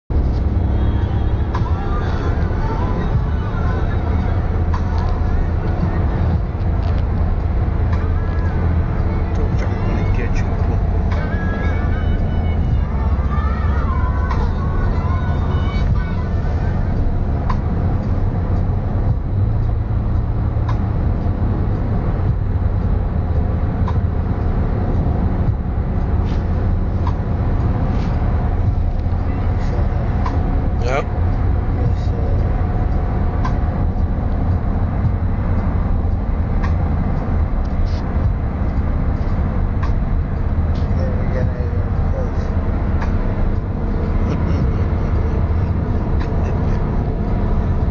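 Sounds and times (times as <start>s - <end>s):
moving vehicle rumble: 0.1s - 47.9s
music: 0.1s - 47.9s
faint voices: 31.8s - 32.7s.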